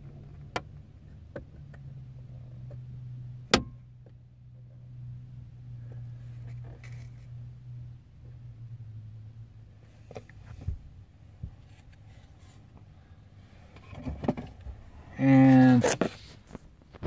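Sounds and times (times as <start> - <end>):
low hum inside truck cab: 0.0 - 17.0.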